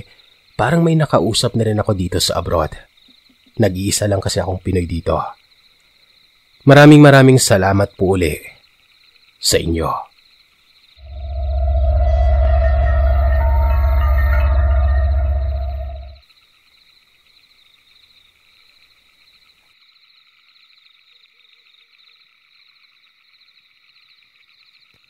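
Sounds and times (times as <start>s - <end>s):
night insects chirring: 0.0s - 25.0s
deep ominous drone: 11.0s - 16.2s
steady tone: 11.0s - 16.2s.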